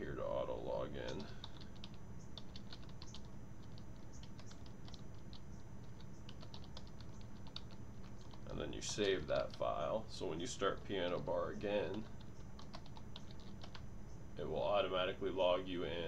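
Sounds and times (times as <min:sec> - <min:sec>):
low background hum: 0:00.0 - 0:16.0
keyboard typing clicks: 0:01.0 - 0:09.6, 0:11.1 - 0:13.8.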